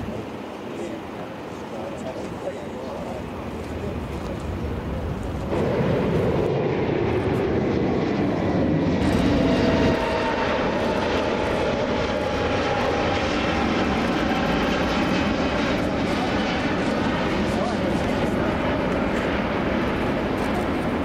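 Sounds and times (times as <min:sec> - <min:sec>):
airliner climbing: 0:00.0 - 0:21.0
jet engine roar: 0:00.0 - 0:21.0.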